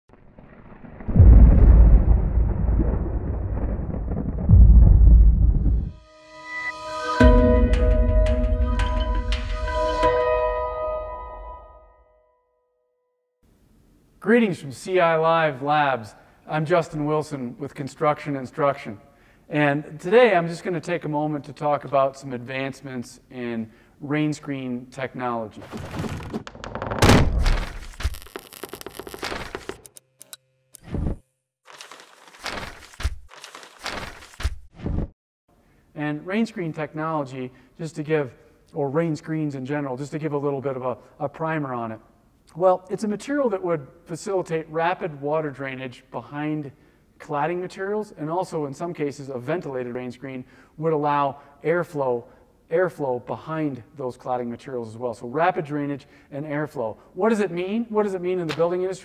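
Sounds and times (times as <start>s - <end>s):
rumbling thunder: 0.6s - 6.0s.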